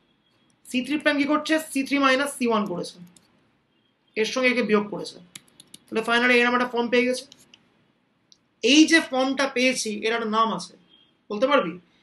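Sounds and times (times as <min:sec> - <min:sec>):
person speaking: 0:00.6 - 0:03.4, 0:04.2 - 0:07.8, 0:08.4 - 0:11.9
computer keyboard clicks: 0:05.3 - 0:05.9.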